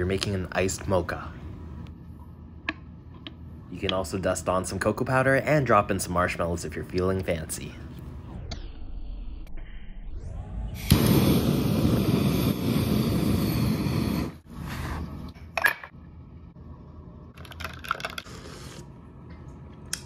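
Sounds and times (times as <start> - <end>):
torch hissing: 10.8 - 14.5.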